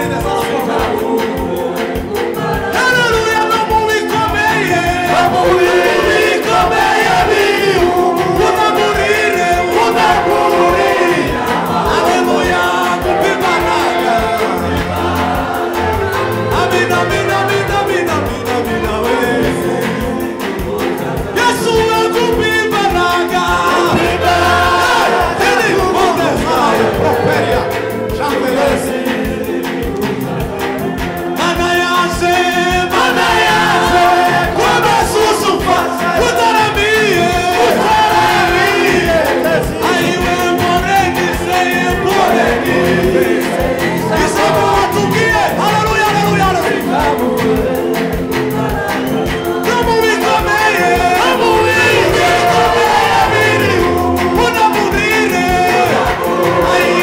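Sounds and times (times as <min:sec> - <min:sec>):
live band: 0:00.0 - 0:57.0
male choir singing: 0:00.0 - 0:57.0
steady drum beat: 0:00.0 - 0:57.0
bass line: 0:04.0 - 0:57.0.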